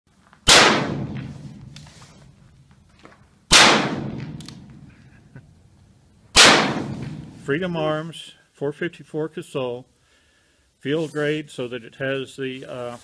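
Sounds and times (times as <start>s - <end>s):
revolver shots with echo: 0.5s - 1.8s, 3.5s - 4.9s, 6.4s - 7.5s.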